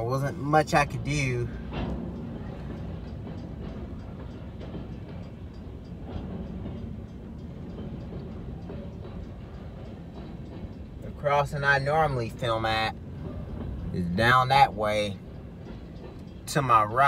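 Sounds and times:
train wheels rumbling on rail: 0:00.0 - 0:17.0.

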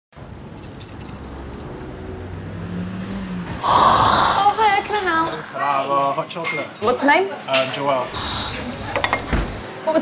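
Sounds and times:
street traffic: 0:00.1 - 0:10.0
car passing with low rumble: 0:00.2 - 0:05.7
light metallic jingle: 0:00.6 - 0:01.7.

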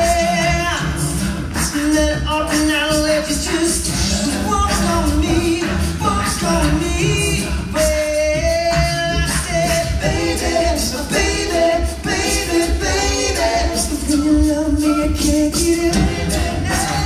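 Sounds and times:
lead voice singing: 0:00.0 - 0:17.0
sung bass line: 0:00.0 - 0:17.0
vocal beat: 0:00.0 - 0:17.0
male group singing a cappella: 0:02.5 - 0:17.0.

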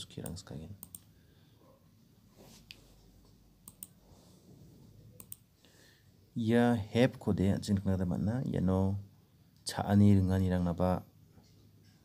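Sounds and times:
computer mouse clicks: 0:00.2 - 0:01.1, 0:02.7 - 0:04.0, 0:05.2 - 0:05.5.

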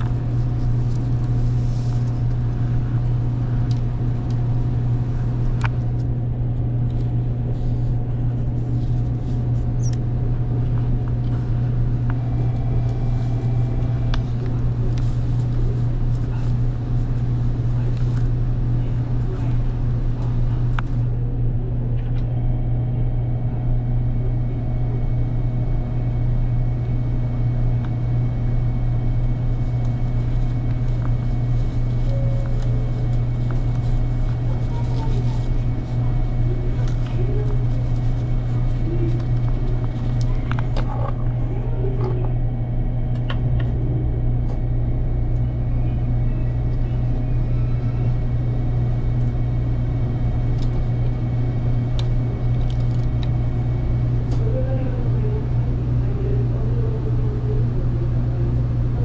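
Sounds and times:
train car low hum: 0:00.0 - 0:59.0
faint voices: 0:10.4 - 0:24.8, 0:28.3 - 0:44.4, 0:53.8 - 0:59.0.

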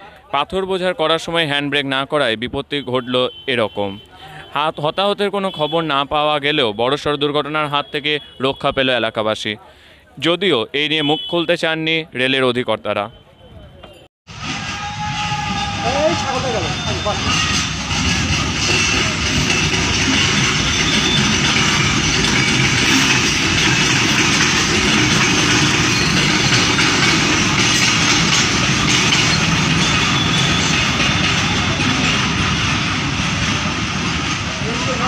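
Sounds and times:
steel wheels rolling on rails: 0:14.3 - 0:35.0.

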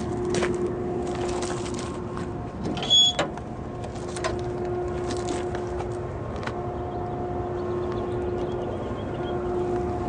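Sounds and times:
low rumbling background: 0:00.0 - 0:10.0
steady mechanical hum: 0:00.0 - 0:10.0.

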